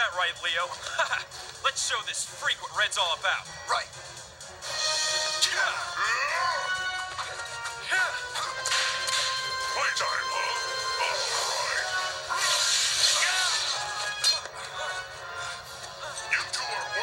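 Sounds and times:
fight soundtrack music: 3.4s - 17.0s.

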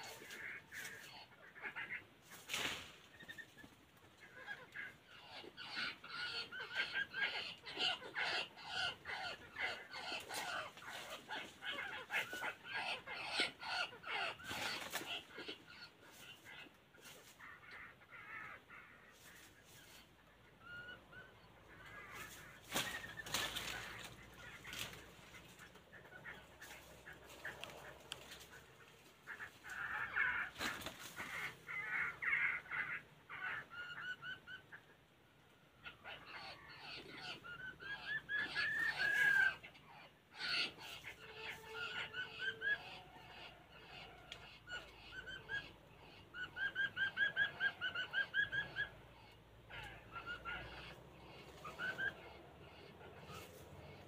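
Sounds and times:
songbirds chirping: 0.0s - 54.0s.

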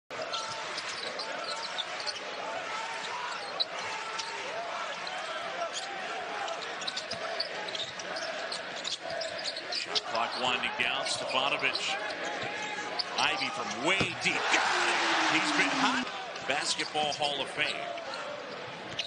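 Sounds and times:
murmur of crowd voices: 0.1s - 19.0s.

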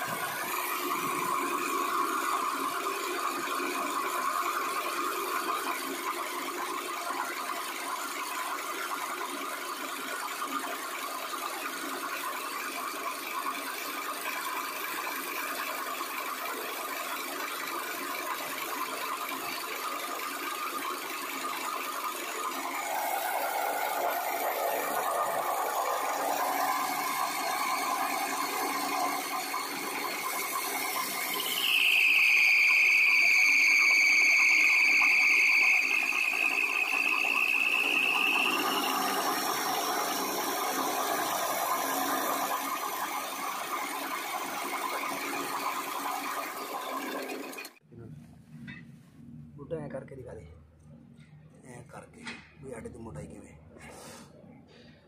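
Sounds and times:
grinding mill running: 0.0s - 47.8s
loud high squeal: 22.3s - 47.8s.

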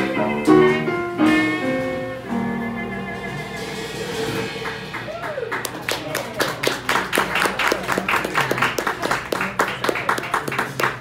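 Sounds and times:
audience applause: 4.6s - 11.0s.

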